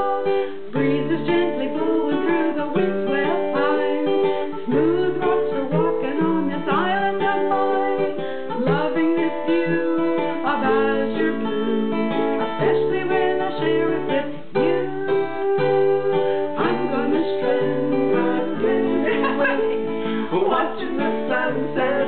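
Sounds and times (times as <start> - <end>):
acoustic plucked string instrument: 0.0 - 22.0.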